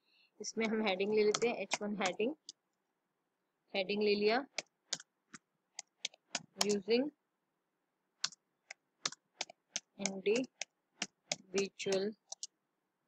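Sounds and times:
keyboard keys clicking: 0.6s - 2.6s, 4.5s - 6.8s, 8.2s - 12.5s.

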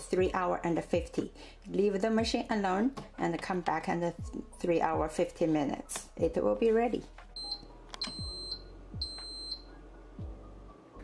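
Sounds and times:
high-pitched electronic beeps: 7.4s - 9.7s.

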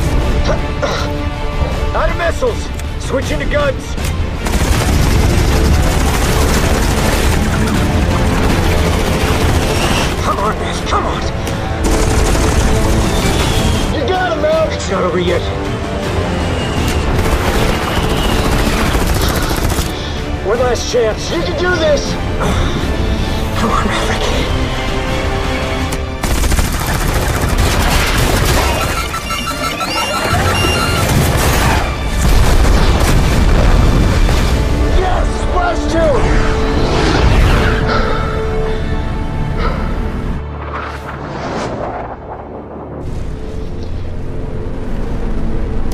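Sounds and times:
film music: 0.0s - 45.9s
heavy explosions: 4.3s - 10.8s, 30.5s - 35.0s, 40.4s - 44.4s
jet cannon firing bursts: 4.4s - 10.4s, 16.8s - 20.1s, 26.2s - 34.6s
rotary cannon firing: 4.4s - 10.4s
quick beeping tone: 28.7s - 31.2s.

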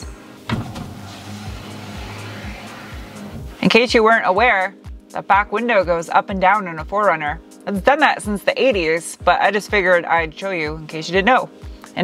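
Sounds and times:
background music with steady beat: 0.0s - 12.0s
electric window motor hum: 0.4s - 3.6s.

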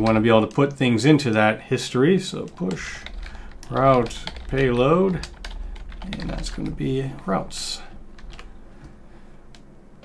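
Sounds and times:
computer keyboard keystrokes: 2.3s - 6.8s, 8.2s - 8.5s.

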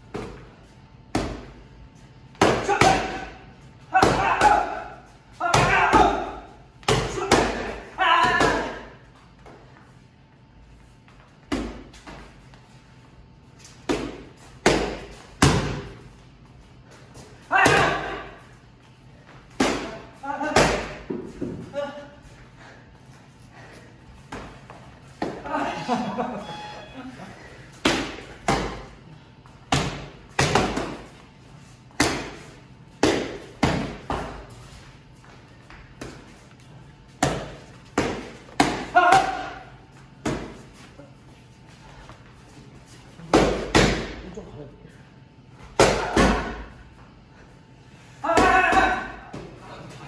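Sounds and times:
boxing gloves striking mitts: 13.8s - 16.0s, 27.8s - 28.9s, 29.7s - 31.1s, 32.0s - 34.6s, 37.2s - 39.6s, 43.2s - 44.2s, 45.7s - 46.7s.

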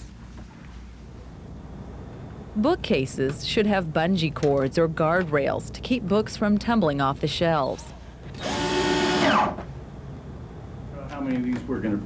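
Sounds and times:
power drill winding down: 8.4s - 9.6s.

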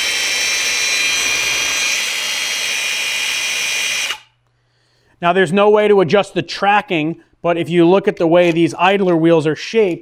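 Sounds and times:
angle grinder running: 0.0s - 4.3s.

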